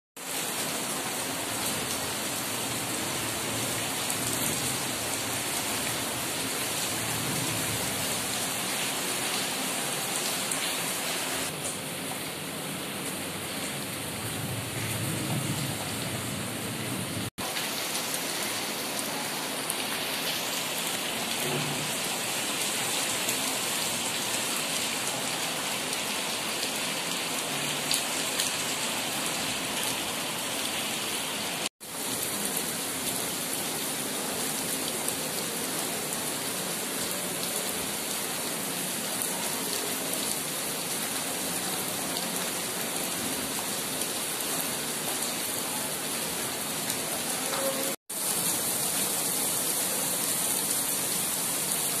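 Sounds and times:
heavy rain splashing into water: 0.2s - 52.0s.

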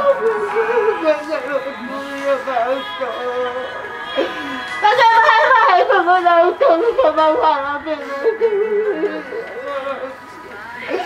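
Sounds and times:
woman singing slow melody: 0.0s - 11.0s.

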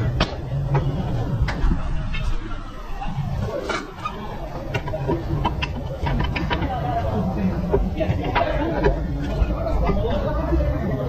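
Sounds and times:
workshop rumble: 0.0s - 11.0s.

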